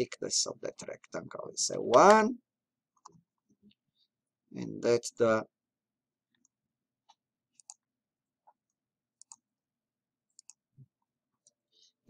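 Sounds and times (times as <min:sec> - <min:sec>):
computer mouse clicks: 0:07.1 - 0:07.8, 0:09.2 - 0:09.4, 0:10.3 - 0:10.6.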